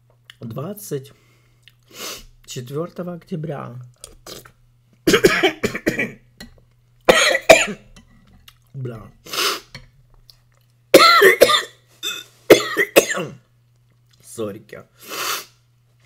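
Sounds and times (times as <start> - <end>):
person coughing hard: 5.1 - 6.2, 7.1 - 7.8, 11.0 - 13.4.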